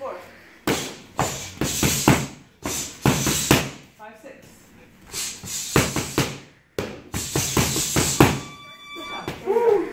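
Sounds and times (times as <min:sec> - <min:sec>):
gloved punches on focus mitts: 0:00.6 - 0:03.8, 0:05.4 - 0:08.4
high-pitched electronic tone: 0:08.2 - 0:09.6.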